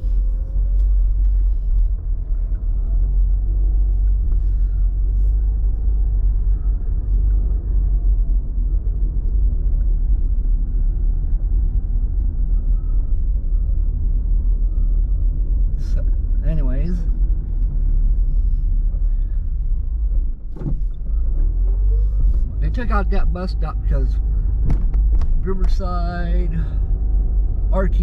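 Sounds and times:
vehicle engine and road rumble: 0.0s - 28.0s.

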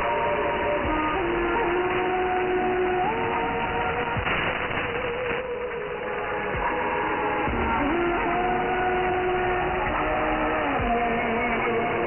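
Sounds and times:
radio music with sliding notes: 0.0s - 12.0s
radio static: 3.8s - 6.2s.

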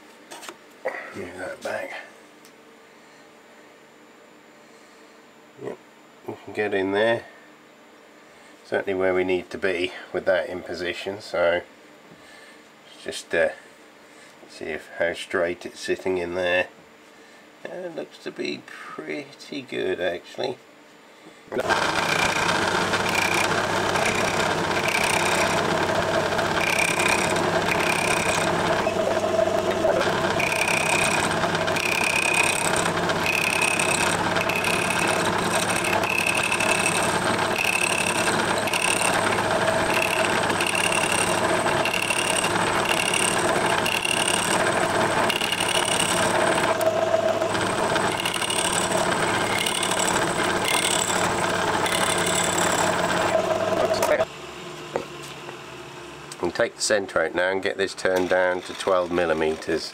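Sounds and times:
metal lathe running: 21.6s - 54.3s.

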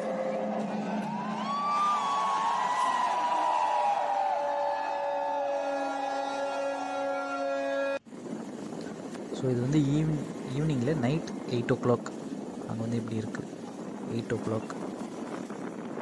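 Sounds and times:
steady held tones: 0.0s - 8.0s
long wavering drawn-out voice: 4.4s - 8.0s.

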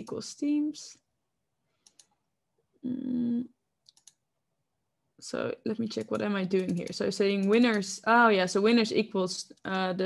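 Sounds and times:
person humming mm: 2.8s - 3.5s
faint clicks: 3.8s - 4.2s.

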